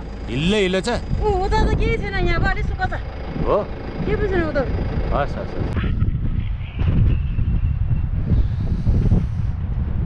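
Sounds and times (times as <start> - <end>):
vehicle driving rumble: 0.0 - 10.0
voices talking: 0.2 - 7.4.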